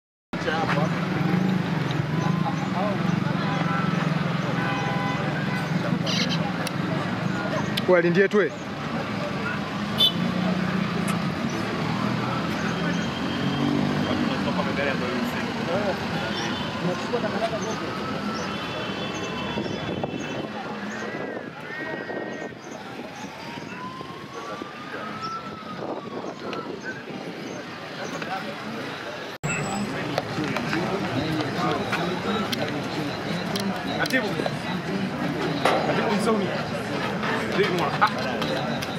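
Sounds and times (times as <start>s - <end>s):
people chattering: 0.4s - 38.9s
people talking: 0.4s - 38.9s.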